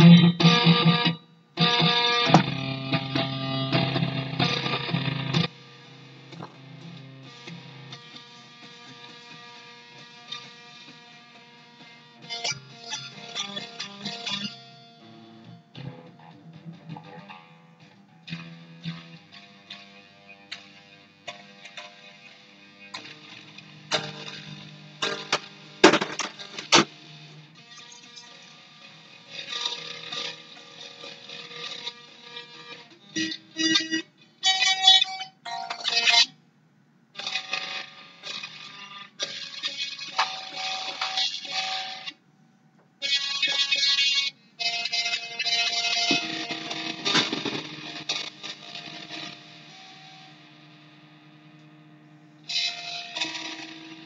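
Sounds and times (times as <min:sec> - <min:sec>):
distorted electric guitar: 0:00.0 - 0:36.4, 0:37.1 - 0:42.2, 0:42.8 - 0:54.0.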